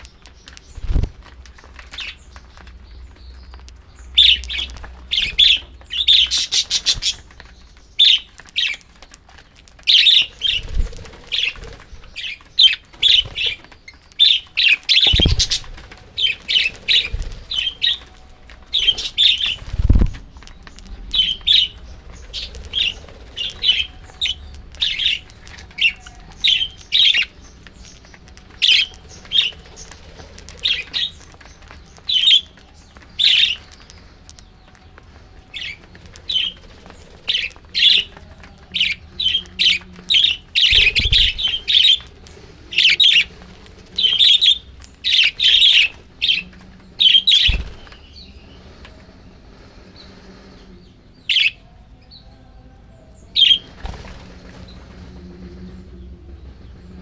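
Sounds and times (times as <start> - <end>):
wings fluttering thuds: 0.3 - 3.7, 4.5 - 14.0, 14.8 - 34.2, 34.9 - 48.2, 53.6 - 55.2
budgerigars chirping: 4.1 - 8.8, 9.9 - 18.1, 18.7 - 19.7, 21.1 - 34.8, 35.5 - 43.3, 44.0 - 48.4, 51.3 - 51.6.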